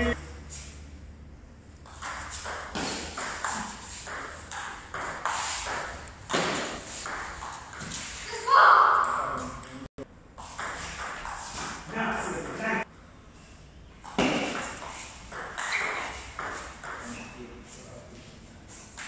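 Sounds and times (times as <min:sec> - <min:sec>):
table tennis ball pinging: 0:01.8 - 0:08.0, 0:14.0 - 0:17.1.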